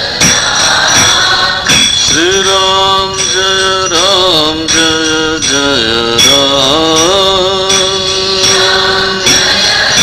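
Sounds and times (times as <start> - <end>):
person chanting: 0.0 - 10.0.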